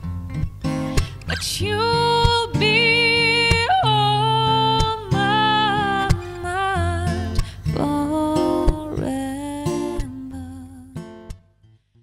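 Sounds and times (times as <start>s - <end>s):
acoustic guitar strumming: 0.0s - 11.7s
woman singing: 1.0s - 11.2s.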